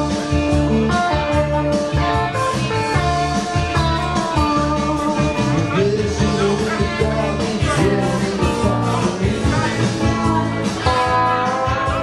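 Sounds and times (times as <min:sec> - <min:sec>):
electric guitar playing: 0:00.0 - 0:12.0
repeating bass rhythm: 0:00.0 - 0:12.0.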